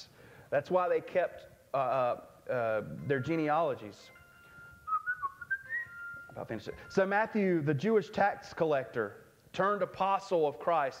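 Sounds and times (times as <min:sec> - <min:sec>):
person speaking: 0:00.6 - 0:04.2, 0:06.3 - 0:10.9
faint high whistling tone: 0:03.0 - 0:06.9.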